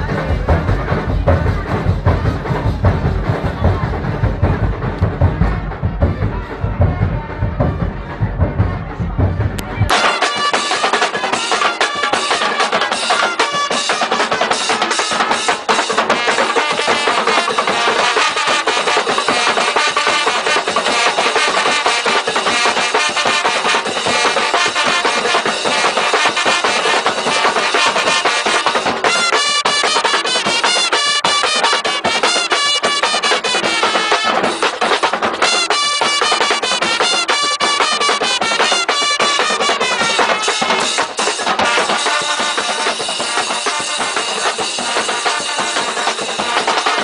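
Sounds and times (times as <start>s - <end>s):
street band drums and brass: 0.0s - 47.0s.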